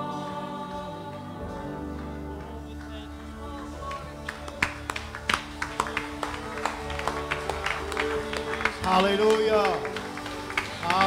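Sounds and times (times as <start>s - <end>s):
sustained keyboard chords: 0.0s - 11.0s.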